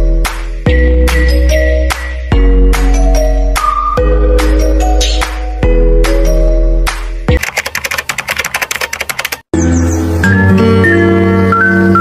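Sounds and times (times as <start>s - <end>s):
melodic music: 0.0s - 12.0s
rapid sharp clicks: 7.4s - 9.5s.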